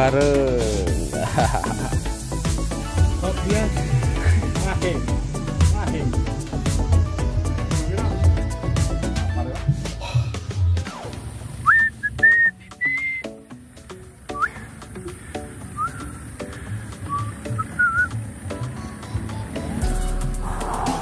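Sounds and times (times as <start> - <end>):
music with whistled tune: 10.6 - 13.6, 14.3 - 21.0.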